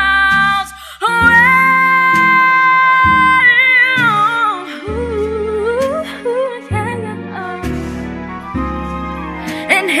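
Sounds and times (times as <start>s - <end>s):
woman singing wordless melody: 0.0s - 8.0s, 9.4s - 10.0s
backing chords: 0.0s - 10.0s.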